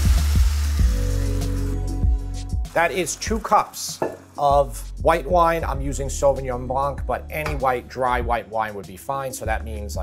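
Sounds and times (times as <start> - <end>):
wine sizzling in hot pan: 0.0 - 1.9, 2.7 - 4.4
background music with bass: 0.0 - 10.0.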